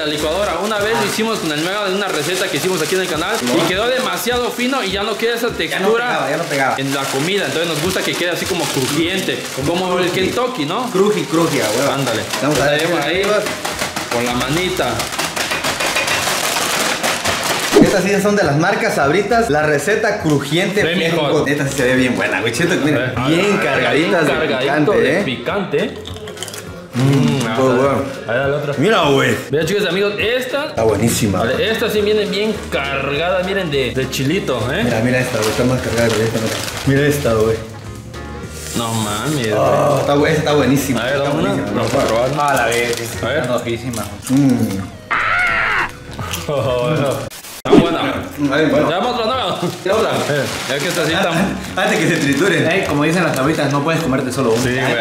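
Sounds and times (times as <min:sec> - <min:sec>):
chips crackling: 0:00.0 - 0:18.4, 0:32.0 - 0:46.4, 0:47.1 - 0:55.0
plastic foil bags crinkling: 0:00.0 - 0:18.4, 0:26.1 - 0:29.2, 0:31.4 - 0:55.0
high-pitched exclaiming voice: 0:45.1 - 0:46.0.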